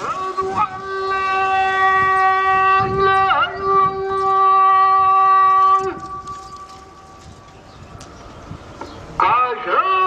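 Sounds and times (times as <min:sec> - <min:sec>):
call to prayer singing: 0:00.0 - 0:10.0.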